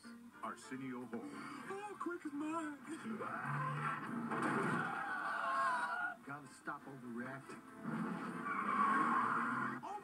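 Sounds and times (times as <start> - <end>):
car tyres squealing: 3.2 - 6.2, 7.8 - 9.8.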